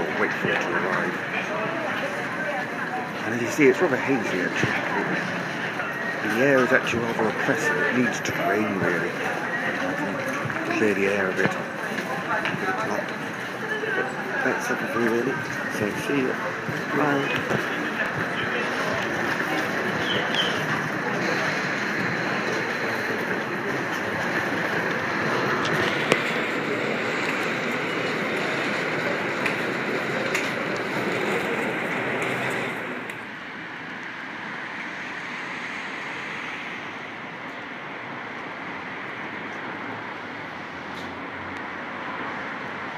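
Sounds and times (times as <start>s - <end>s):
road traffic hum: 0.0s - 42.9s.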